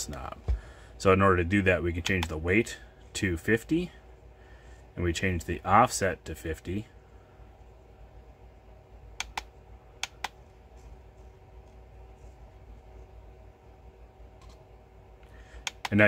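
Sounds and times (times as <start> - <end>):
faint steady hum: 0.0 - 16.0
light control clicks: 9.2 - 10.4.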